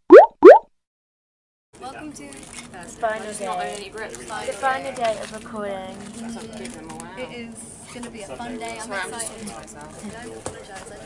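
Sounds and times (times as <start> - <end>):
cartoon bloop pops: 0.0 - 0.7.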